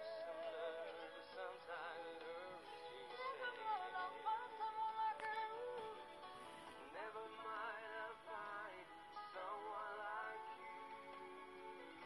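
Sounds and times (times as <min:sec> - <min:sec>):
person singing with vibrato: 0:00.0 - 0:11.2.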